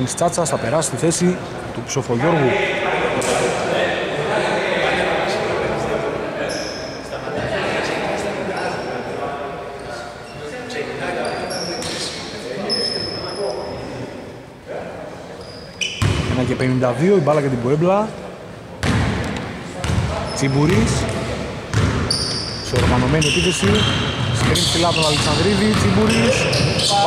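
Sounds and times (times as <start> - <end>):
people talking indistinctly: 0.0 - 27.0
short high-pitched squeaks: 15.4 - 16.0.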